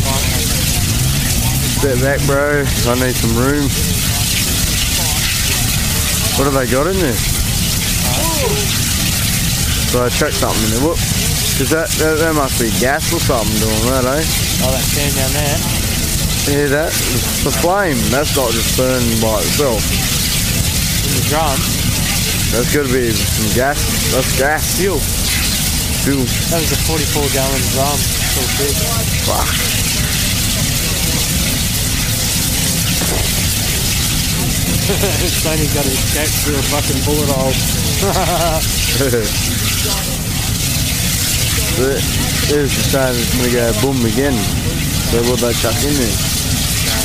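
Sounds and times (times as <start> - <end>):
fire roaring: 0.0 - 47.0.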